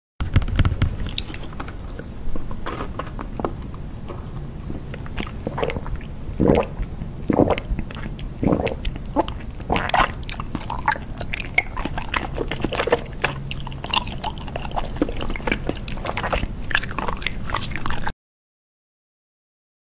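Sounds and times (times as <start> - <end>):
biting and chewing gummy candy: 0.2 - 18.1.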